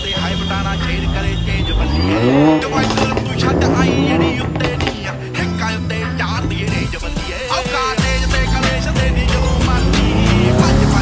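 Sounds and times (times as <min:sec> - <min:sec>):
car engine revving: 0:00.0 - 0:11.0
voices: 0:00.0 - 0:11.0.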